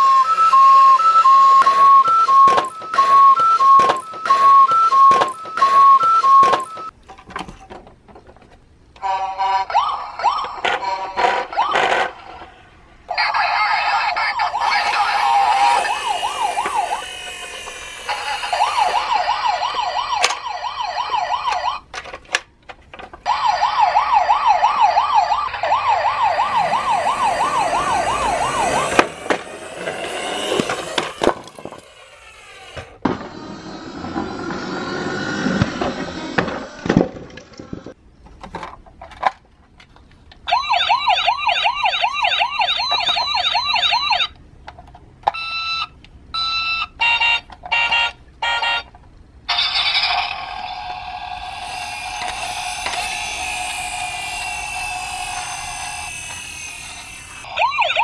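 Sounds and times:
toy police siren: 0:00.0 - 0:06.9, 0:09.0 - 0:12.5, 0:13.1 - 0:21.9, 0:23.2 - 0:32.9, 0:40.5 - 0:44.4, 0:45.3 - 0:48.9, 0:49.5 - 0:58.0.

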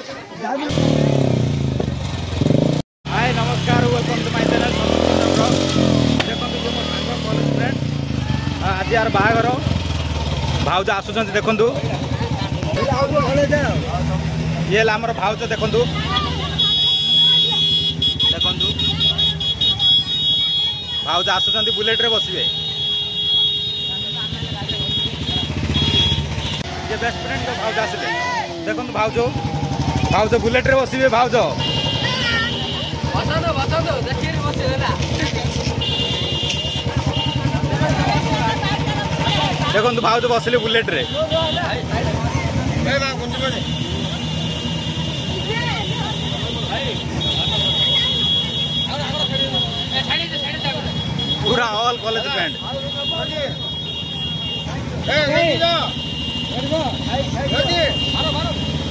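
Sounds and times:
crowd voices: 0:00.0 - 0:02.1, 0:03.1 - 0:58.9
motorcycle engine idling: 0:06.2 - 0:27.8, 0:28.5 - 0:58.9.

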